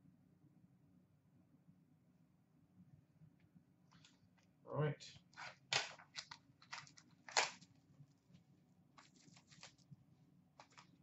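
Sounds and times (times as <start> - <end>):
trading cards rustling: 5.3 - 7.8, 9.0 - 9.9, 10.6 - 11.0
plastic wrapping rustling: 5.3 - 8.4, 9.0 - 10.0, 10.6 - 11.0.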